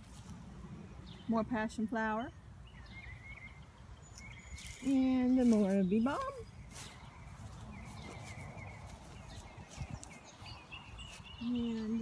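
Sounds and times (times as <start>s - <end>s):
soft footsteps through grass: 0.0s - 0.7s, 4.0s - 12.0s
faint bird chirps: 5.9s - 12.0s.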